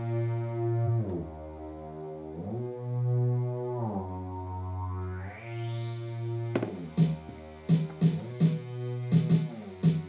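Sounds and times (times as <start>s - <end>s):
drum machine hits: 6.6s - 8.6s.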